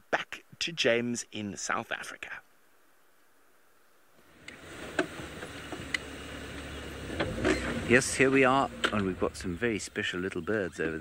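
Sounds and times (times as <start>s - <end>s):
vehicle engine rumbling: 4.2s - 11.0s.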